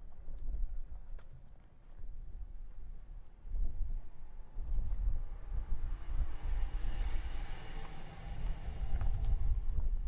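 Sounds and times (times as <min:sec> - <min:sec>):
wind rumbling on microphone: 0:00.0 - 0:10.0
vehicle passing: 0:05.4 - 0:09.7.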